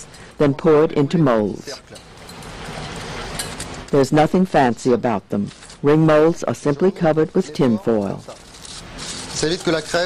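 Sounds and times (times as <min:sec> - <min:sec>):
aluminium foil crinkling: 0:08.0 - 0:10.0.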